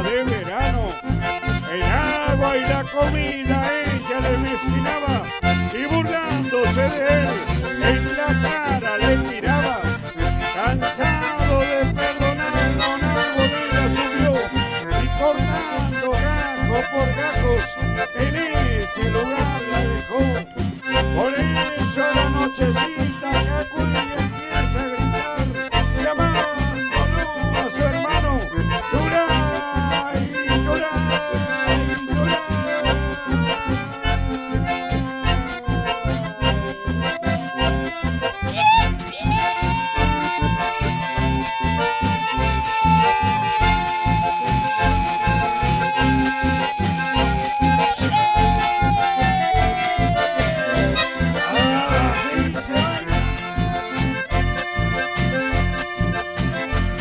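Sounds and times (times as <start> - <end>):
accordions playing melody: 0.0 - 57.0
electric bass: 0.0 - 57.0
steady beat: 0.0 - 57.0
strummed acoustic guitars: 0.0 - 57.0.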